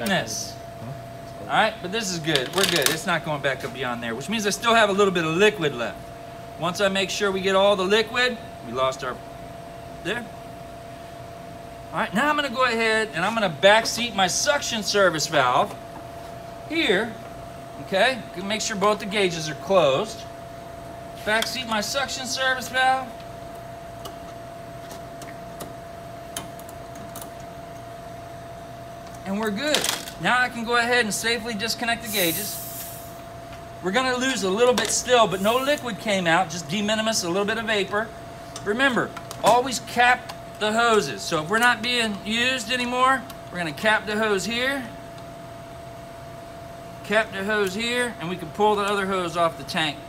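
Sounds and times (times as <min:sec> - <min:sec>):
condensing unit humming: 0:00.0 - 0:50.0
even hiss: 0:32.0 - 0:33.2.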